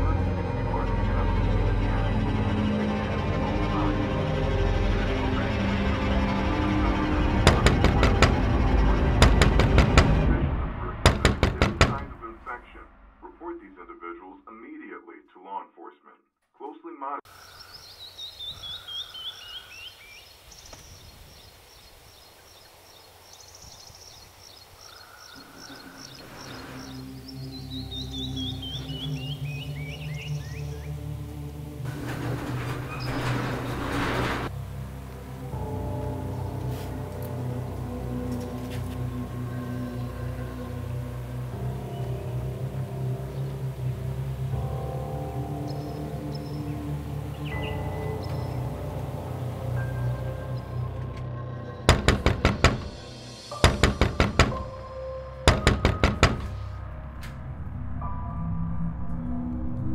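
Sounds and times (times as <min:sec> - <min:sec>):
low drone of held music tones: 0:00.0 - 0:13.9, 0:25.6 - 0:51.9
suspenseful film score: 0:00.0 - 0:16.0, 0:24.8 - 0:59.9
birds singing: 0:17.3 - 0:34.4, 0:39.0 - 0:57.0.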